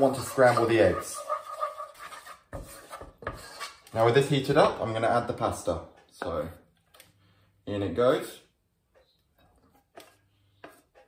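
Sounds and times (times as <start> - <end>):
wooden spoon scraping saucepan: 0.0 - 4.7, 9.7 - 11.0.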